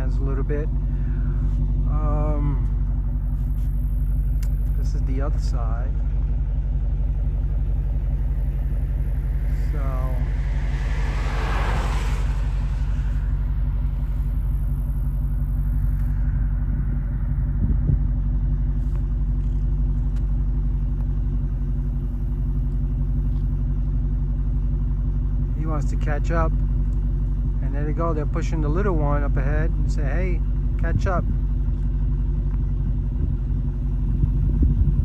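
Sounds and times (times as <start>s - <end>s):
vehicle engine idling: 0.0s - 35.0s
vehicle passing: 7.8s - 17.7s.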